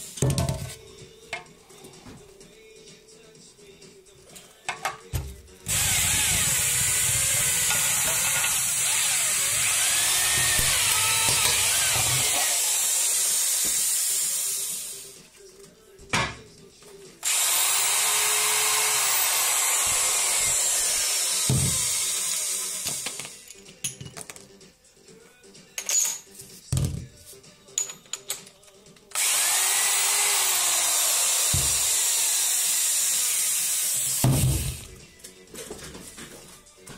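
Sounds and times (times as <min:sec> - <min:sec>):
faint background music: 0:00.0 - 0:36.9
electric drill whining: 0:05.7 - 0:15.1, 0:17.2 - 0:23.4, 0:29.1 - 0:34.9.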